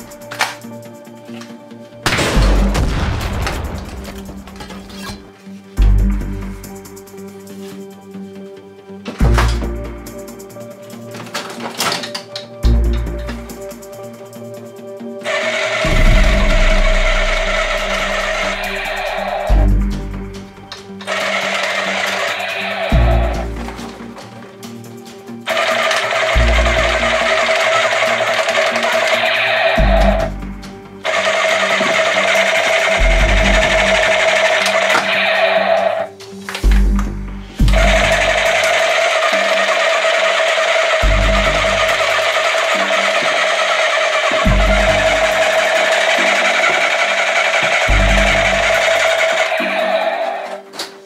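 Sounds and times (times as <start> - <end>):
background music with bass: 0.0 - 21.2, 22.4 - 38.7, 41.0 - 42.9, 44.3 - 46.3, 47.6 - 49.8
toy gun electronic firing rattle: 15.3 - 19.5, 21.0 - 23.3, 25.5 - 30.2, 31.0 - 35.8, 37.7 - 50.5.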